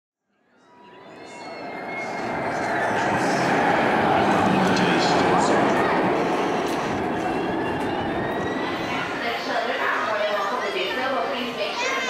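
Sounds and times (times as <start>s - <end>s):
even rushing noise: 2.0s - 9.2s.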